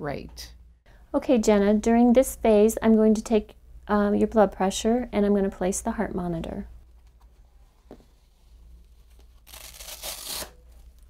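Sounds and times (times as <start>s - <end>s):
velcro rasping: 9.1s - 11.0s.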